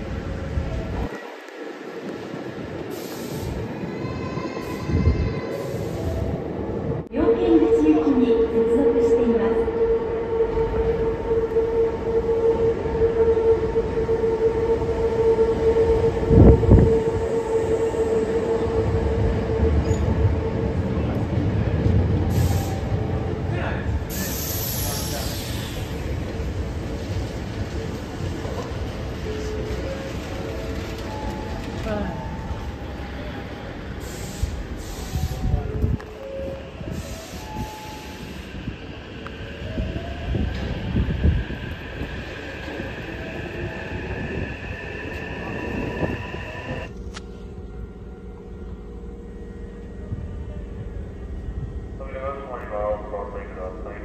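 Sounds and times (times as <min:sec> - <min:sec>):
electric train rumbling: 0:00.0 - 0:54.0
train whine of thin tones: 0:00.1 - 0:23.4, 0:24.1 - 0:54.0.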